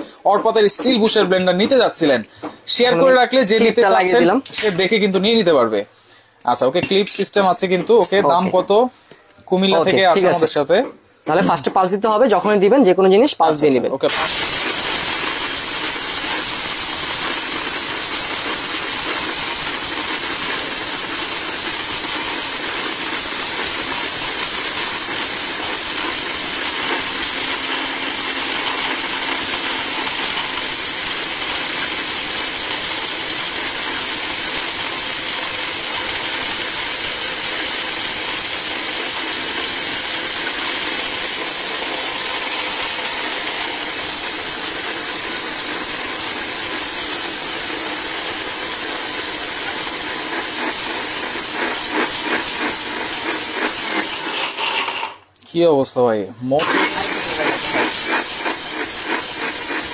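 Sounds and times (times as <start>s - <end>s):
mixer grinder motor whirring: 0.0s - 5.4s, 9.7s - 11.9s, 14.1s - 55.4s, 56.6s - 59.9s
hissing rattle of grinding bark: 14.1s - 55.3s, 56.6s - 59.9s.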